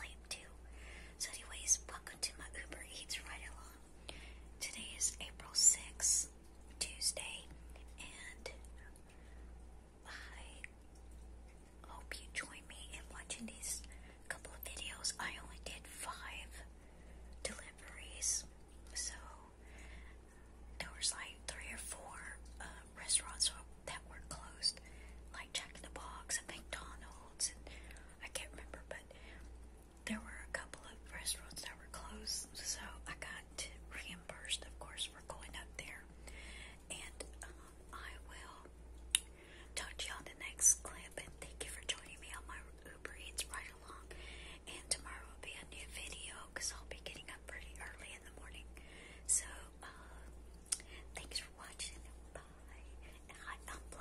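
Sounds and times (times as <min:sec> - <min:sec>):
woman whispering: 0:00.0 - 0:03.9, 0:04.6 - 0:09.1, 0:10.0 - 0:10.8, 0:11.8 - 0:16.7, 0:17.3 - 0:19.6, 0:20.8 - 0:38.8, 0:39.7 - 0:54.0
steady low hum: 0:00.0 - 0:54.0.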